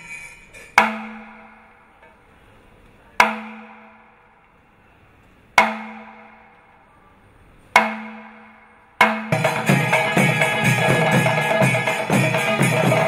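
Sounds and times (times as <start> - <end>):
drums and cymbals striking: 0.0 - 2.1, 3.2 - 4.4, 5.6 - 6.7, 7.7 - 13.0.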